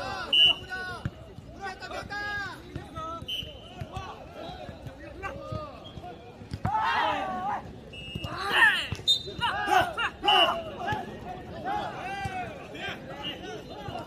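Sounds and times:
players shouting: 0:00.0 - 0:14.0.

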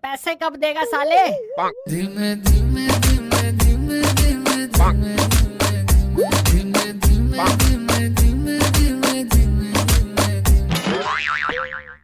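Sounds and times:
wobbling cartoon boing: 0:01.4 - 0:01.9, 0:11.0 - 0:12.0
background music with heavy beat: 0:02.5 - 0:10.7.

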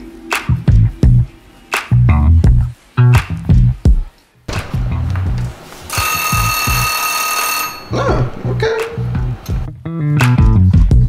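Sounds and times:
background music with bass: 0:00.0 - 0:05.6, 0:08.0 - 0:11.0
timer bell ringing: 0:05.9 - 0:08.2.

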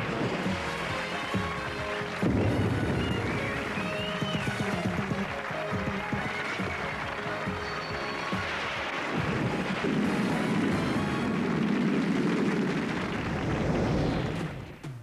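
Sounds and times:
tv comedy theme music: 0:00.0 - 0:11.6.

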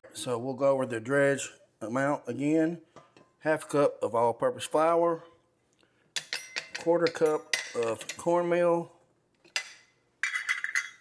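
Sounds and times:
metal clink on mixing bowl: 0:06.2 - 0:08.2, 0:09.6 - 0:11.0.

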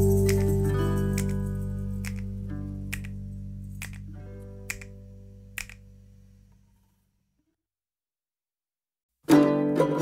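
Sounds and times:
background music of held notes: 0:00.0 - 0:05.8, 0:09.3 - 0:10.0
sharp snap-like click: 0:00.2 - 0:02.3, 0:02.9 - 0:03.2, 0:03.8 - 0:04.1, 0:04.7 - 0:05.0, 0:05.6 - 0:05.9.

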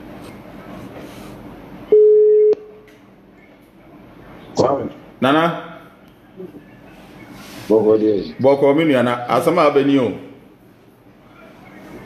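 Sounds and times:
telephone beep: 0:01.9 - 0:02.7.

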